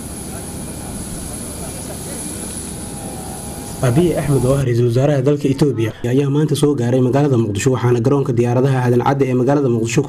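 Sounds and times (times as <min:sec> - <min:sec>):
crowd talking: 0:00.0 - 0:05.9
jet airliner whine: 0:00.0 - 0:06.1.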